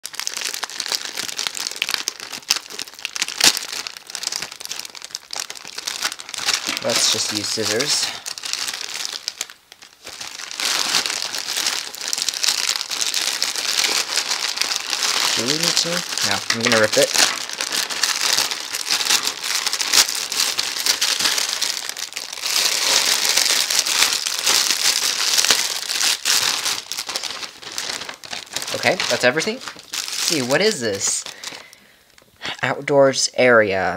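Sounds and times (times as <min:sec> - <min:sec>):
poly mailer tearing: 0:00.0 - 0:31.6
plastic bag crinkling: 0:00.0 - 0:32.3.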